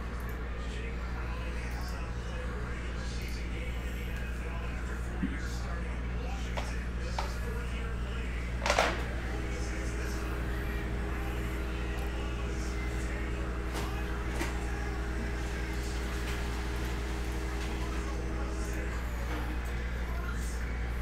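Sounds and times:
low electrical hum: 0:00.0 - 0:21.0.

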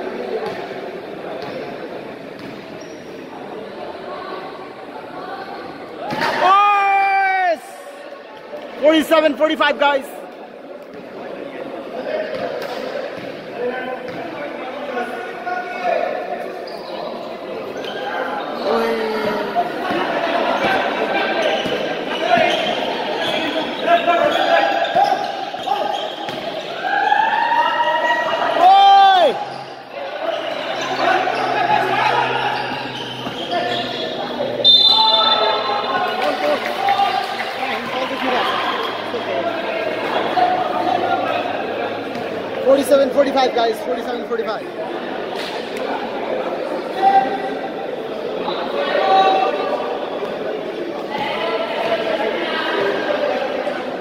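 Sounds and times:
people shouting: 0:26.7 - 0:33.8.

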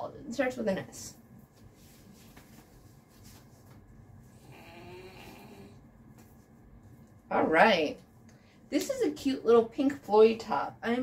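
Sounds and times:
cloth rustling: 0:01.4 - 0:04.2
dog snoring: 0:04.3 - 0:05.8.

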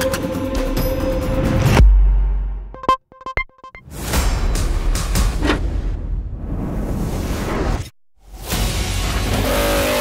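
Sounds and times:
music: 0:00.0 - 0:06.3, 0:08.2 - 0:10.0.

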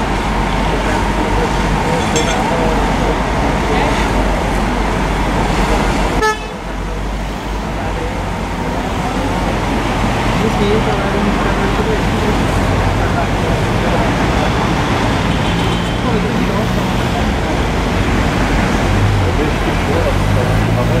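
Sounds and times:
indistinct voices: 0:00.0 - 0:21.0
street traffic: 0:00.0 - 0:21.0
truck engines humming: 0:00.0 - 0:21.0.

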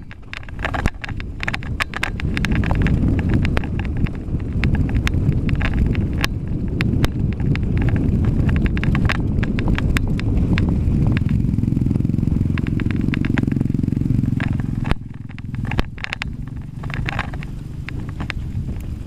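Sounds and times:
bike clicks and rattles: 0:00.0 - 0:19.0
tyres rumbling on dirt: 0:00.0 - 0:19.0
wind: 0:00.0 - 0:19.0.

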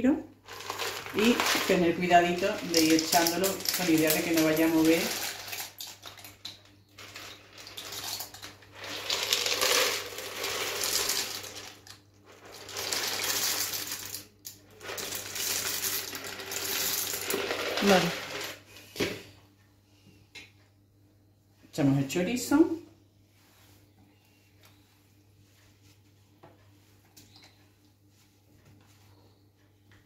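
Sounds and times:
dry pasta pouring into a bowl: 0:00.4 - 0:06.4, 0:07.0 - 0:18.6.

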